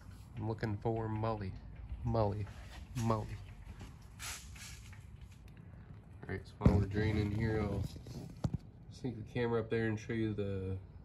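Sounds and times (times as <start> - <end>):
short hiss: 4.1 - 5.0.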